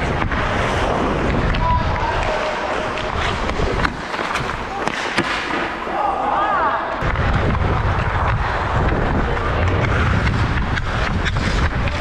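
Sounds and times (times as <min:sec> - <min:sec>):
hockey sticks and pucks cracking: 0:00.0 - 0:06.0, 0:07.0 - 0:12.0
skate blades scraping ice: 0:00.0 - 0:06.0, 0:07.0 - 0:12.0.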